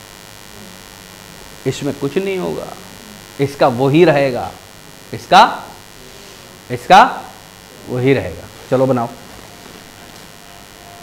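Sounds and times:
low electrical hum with hiss: 0.0 - 11.0
man speaking: 1.6 - 5.8, 6.7 - 9.2.

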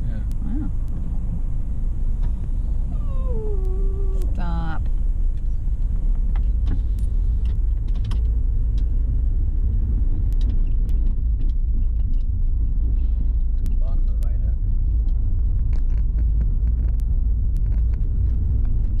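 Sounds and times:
car engine and tyres rumbling: 0.0 - 19.0.

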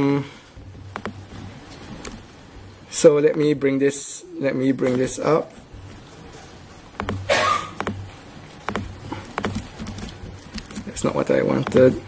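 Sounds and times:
steady low hum: 0.0 - 12.0
laptop keyboard clicks and taps: 0.9 - 1.3, 7.0 - 8.1, 8.7 - 11.0, 11.6 - 12.0.

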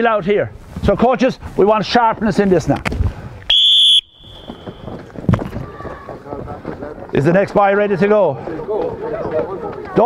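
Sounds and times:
whistle blast: 3.5 - 5.0
outdoor training pitch noise: 3.5 - 5.2.

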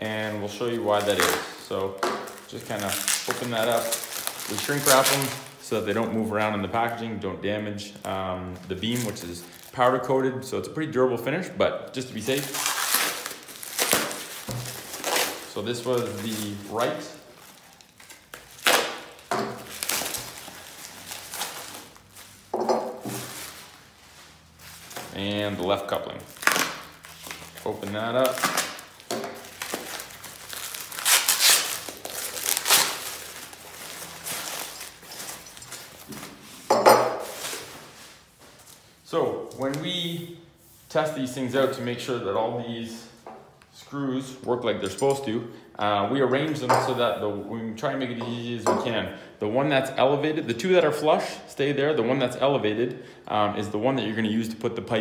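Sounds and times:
plastic packaging crinkling: 0.0 - 7.1, 8.0 - 10.2, 12.1 - 36.5.

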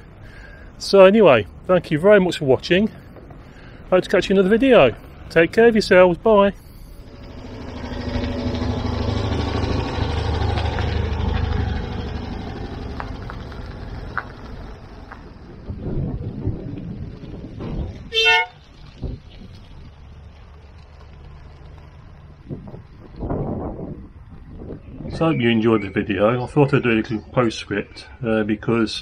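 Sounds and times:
car engine running: 6.8 - 16.4
car horn toot: 18.1 - 18.6.

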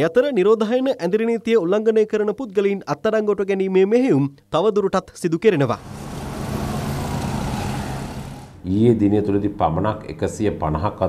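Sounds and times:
motorcycles driving past: 5.8 - 8.6
road noise: 5.8 - 8.9.

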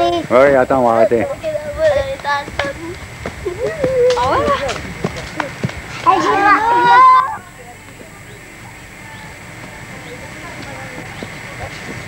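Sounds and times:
hoof thuds on dirt: 2.1 - 6.0.

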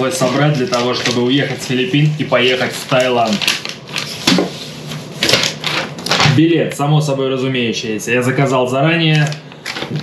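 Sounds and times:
paper sheets rustling: 0.0 - 6.4.

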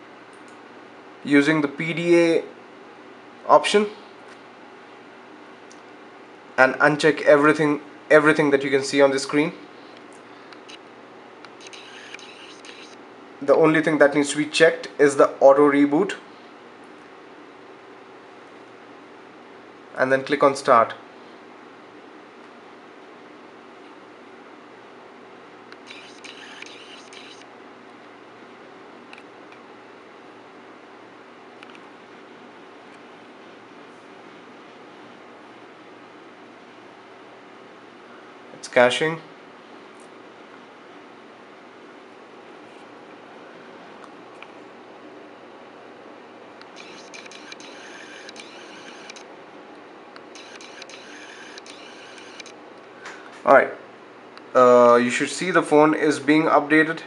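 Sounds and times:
low room hum: 0.0 - 57.0
lens autofocus motor whirring: 11.4 - 13.0, 25.7 - 27.5, 46.6 - 49.3, 50.2 - 52.6.

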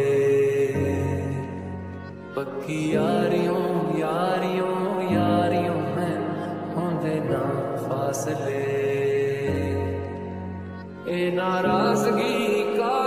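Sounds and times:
slowed lofi love song: 0.0 - 13.0.

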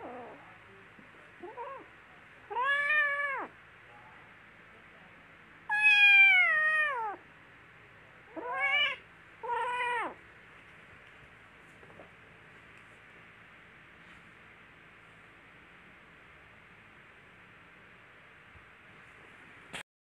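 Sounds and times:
kitten meowing: 5.7 - 7.2, 8.3 - 10.2.

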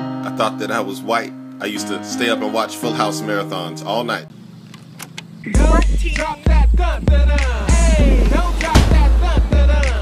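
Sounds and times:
person singing with guitar: 5.5 - 10.0
very deep bass: 5.6 - 10.0.

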